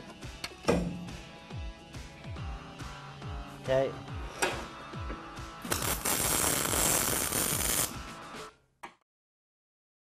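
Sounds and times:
welding arc crackling and hissing: 5.6s - 8.0s.

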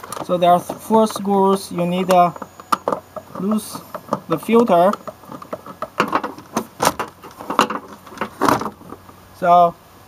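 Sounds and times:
plastic clicks and knocks: 2.0s - 9.0s.

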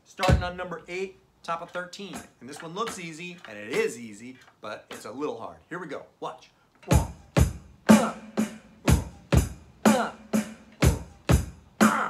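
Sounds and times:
electronic drum kit rock beat: 0.2s - 0.8s, 2.0s - 4.0s, 6.9s - 12.0s.

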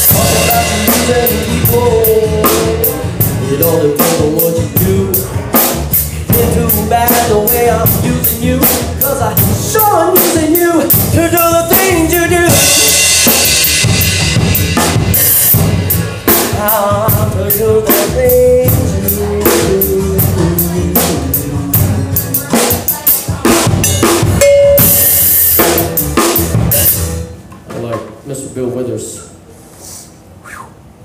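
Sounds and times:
funk band playing: 0.0s - 27.7s
drum kit: 0.0s - 28.2s.

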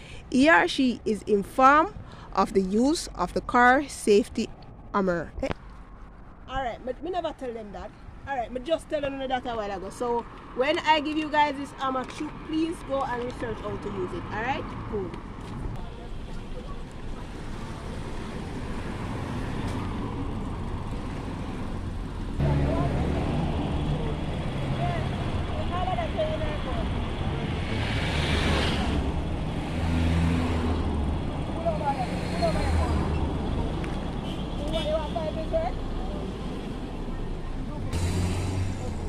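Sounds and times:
car engines in slow traffic: 14.8s - 39.0s
hiss of passing traffic: 15.8s - 34.4s, 37.9s - 39.0s.

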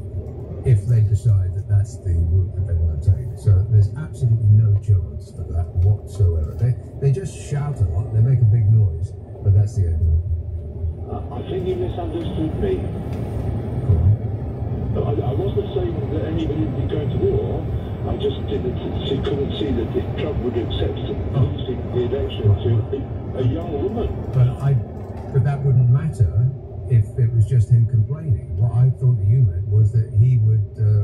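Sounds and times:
car driving rumble: 0.0s - 31.0s
radio voices and music: 11.0s - 14.3s, 14.9s - 31.0s.

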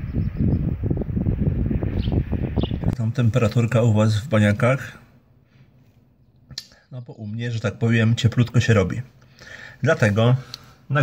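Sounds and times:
man speaking: 3.0s - 5.1s, 6.9s - 9.2s, 9.8s - 11.0s.

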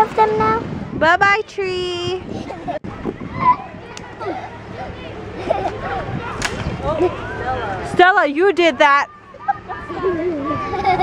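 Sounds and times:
voices chattering: 1.2s - 11.0s
sharp slap: 6.4s - 6.8s.

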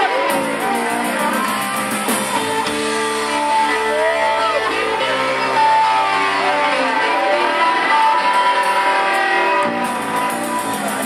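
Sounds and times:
bass guitar: 0.0s - 11.0s
distorted electric guitar: 0.0s - 11.0s
drums: 0.0s - 11.0s.

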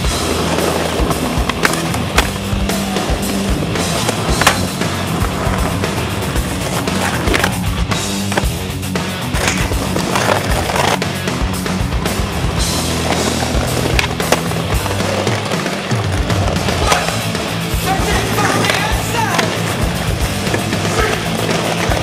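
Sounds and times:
music with repeating bass line: 0.0s - 22.0s
skateboard clacks: 0.0s - 22.0s
skateboard wheels rolling on stone: 0.0s - 22.0s.

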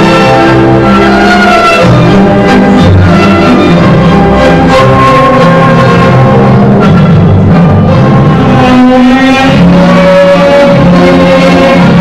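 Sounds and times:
orchestral music with held notes: 0.0s - 12.0s.

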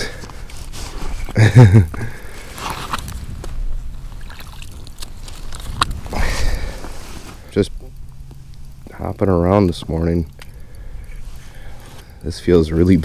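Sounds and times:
low rumble: 2.6s - 12.8s.

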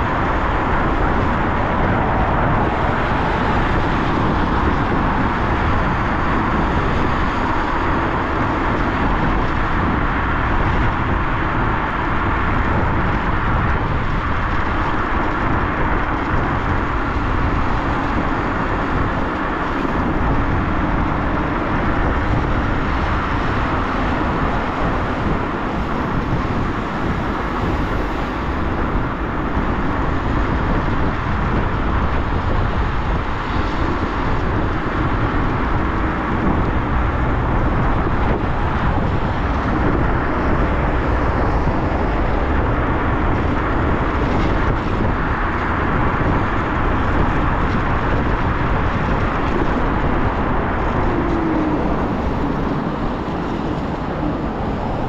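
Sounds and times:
road noise: 0.0s - 55.0s
wind buffeting microphone: 0.0s - 55.0s.

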